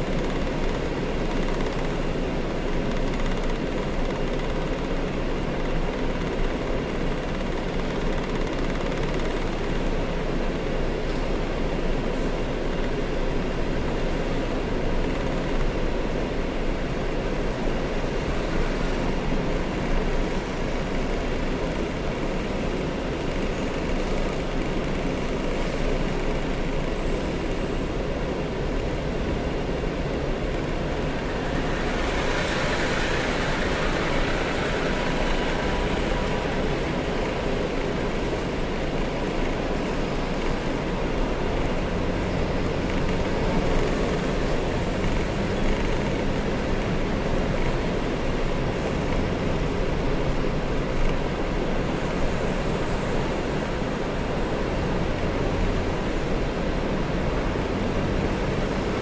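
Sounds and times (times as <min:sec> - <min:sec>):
road noise inside car: 0:00.0 - 0:59.0.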